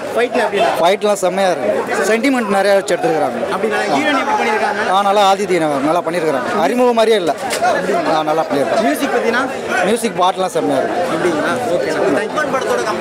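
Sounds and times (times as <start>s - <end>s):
crowd chatter: 0.0s - 13.0s
man talking close to microphone: 0.0s - 13.0s.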